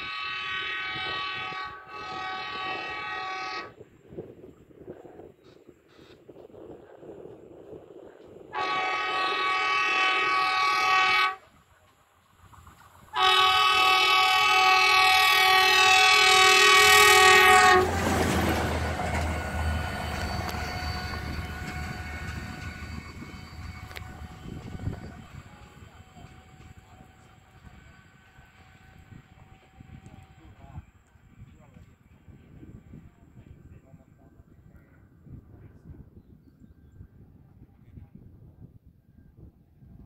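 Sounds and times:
rail vehicle horn blasts: 0:00.0 - 0:03.8, 0:08.5 - 0:11.6, 0:13.1 - 0:27.1
rail vehicle rumbling past: 0:00.0 - 0:36.2.

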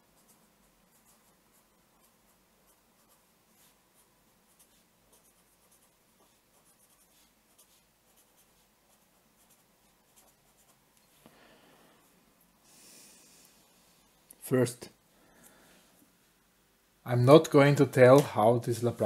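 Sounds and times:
felt-tip pen scratching on paper: 0:00.0 - 0:10.8.

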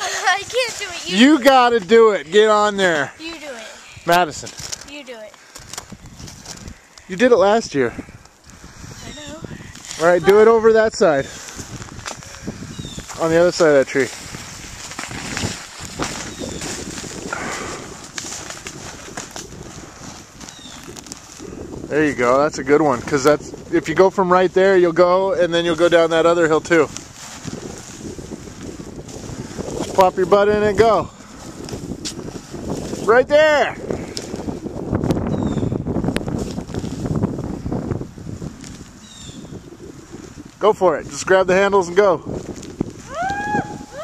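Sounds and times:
vinyl tube scuffing on snow: 0:00.0 - 0:02.0, 0:12.8 - 0:21.5, 0:25.5 - 0:33.3, 0:36.2 - 0:37.6, 0:40.0 - 0:43.1
crackling and rustling: 0:00.0 - 0:07.3, 0:09.6 - 0:33.2, 0:33.9 - 0:44.0
snow crunching: 0:00.0 - 0:07.8, 0:08.6 - 0:44.0
wind rumbling on microphone: 0:00.0 - 0:44.0.

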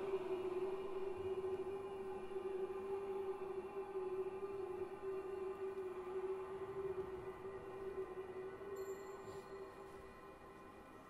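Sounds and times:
vocal ensemble sustained note: 0:00.0 - 0:11.0.

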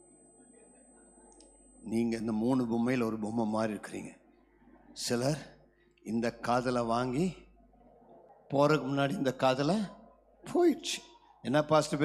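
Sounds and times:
man speaking into a microphone: 0:01.8 - 0:04.2, 0:05.0 - 0:07.5, 0:08.5 - 0:12.0.

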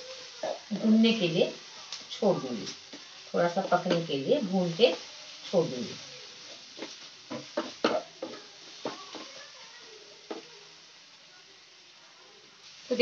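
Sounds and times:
frying hiss: 0:00.0 - 0:13.0.

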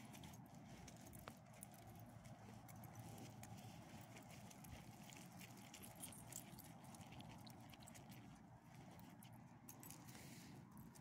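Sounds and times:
paws and footsteps on gravel: 0:00.0 - 0:11.0.

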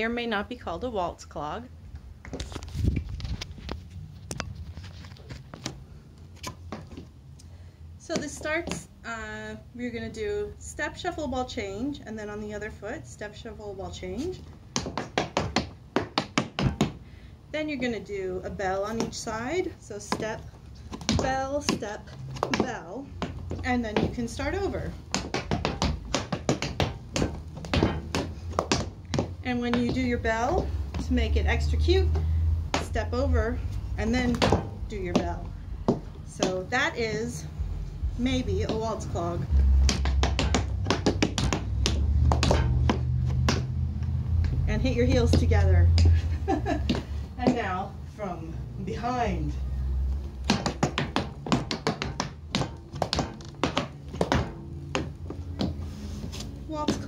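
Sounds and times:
steady low hum: 0:00.0 - 0:57.0
tap shoes on wooden deck: 0:05.2 - 0:07.1, 0:08.1 - 0:09.2, 0:14.0 - 0:17.0, 0:18.1 - 0:37.5, 0:38.2 - 0:47.9, 0:50.0 - 0:57.0.

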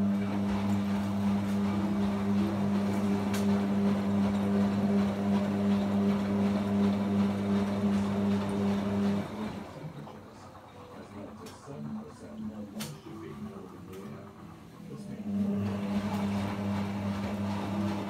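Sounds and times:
washing machine running: 0:00.0 - 0:18.0.

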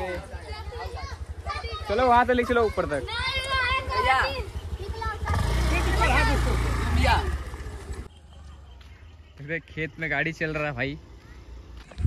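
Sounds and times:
voices calling: 0:00.0 - 0:12.0
scooter engine pulling away: 0:00.5 - 0:08.1.

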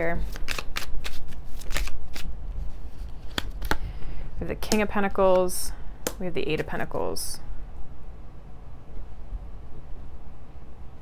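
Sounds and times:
cards being shuffled: 0:00.2 - 0:03.8.

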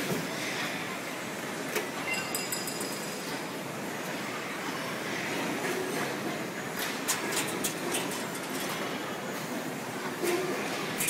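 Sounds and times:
factory machinery running: 0:00.0 - 0:11.0.

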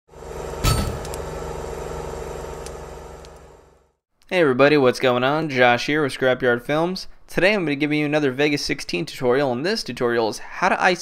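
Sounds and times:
humming drone: 0:00.1 - 0:03.9
deep impact hit: 0:00.6 - 0:01.4.

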